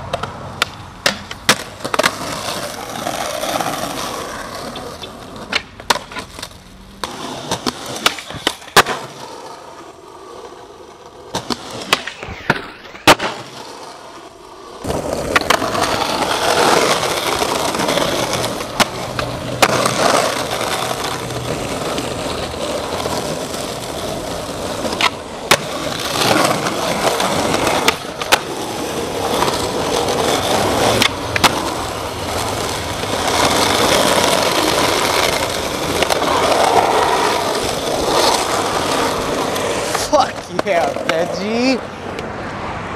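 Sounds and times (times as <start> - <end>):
skateboard pops and clacks: 0.0 - 9.5, 11.3 - 13.8, 14.8 - 41.5
skateboard wheels rolling on asphalt: 0.0 - 42.9.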